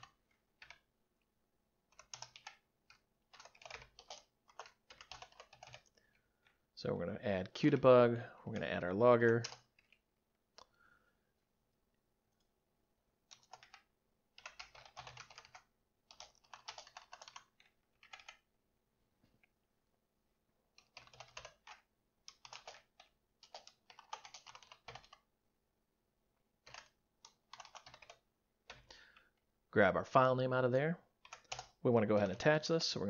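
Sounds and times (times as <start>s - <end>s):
computer keyboard typing: 0.0s - 0.9s, 1.9s - 6.2s, 9.3s - 10.0s, 13.2s - 18.5s, 20.7s - 25.3s, 26.6s - 29.0s, 31.2s - 32.6s.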